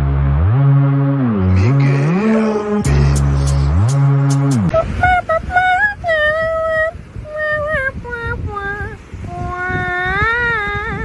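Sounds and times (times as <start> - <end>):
low rumbling noise: 0.0 - 11.0
high voice singing held notes: 1.4 - 11.0.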